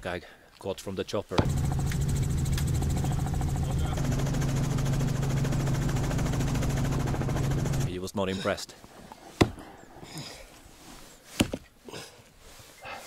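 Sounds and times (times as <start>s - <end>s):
helicopter engine and rotor drone: 1.4s - 7.9s.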